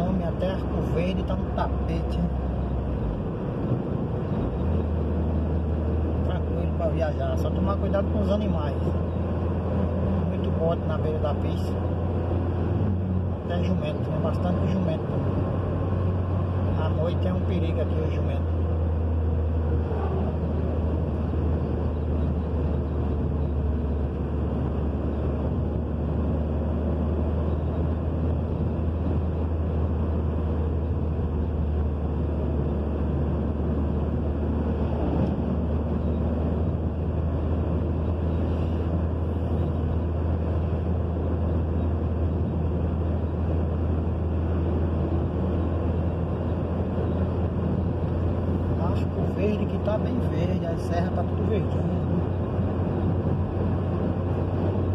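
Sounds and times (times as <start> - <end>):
car cabin road rumble: 0.0 - 54.9
truck passing: 0.0 - 54.9.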